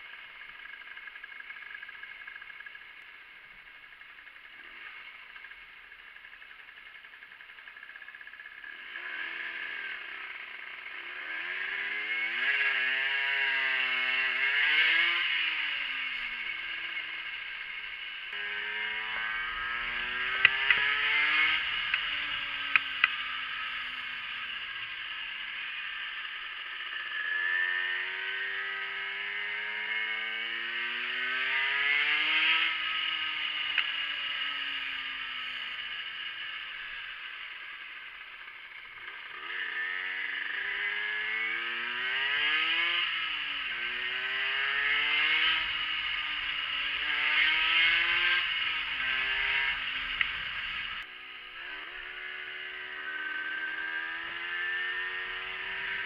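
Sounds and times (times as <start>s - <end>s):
moped engine revving: 0.0s - 56.0s.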